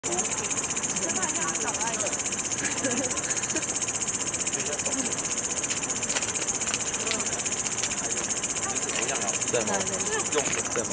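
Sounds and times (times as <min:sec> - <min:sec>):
crickets trilling: 0:00.0 - 0:10.9
faint distant voices: 0:04.4 - 0:10.9.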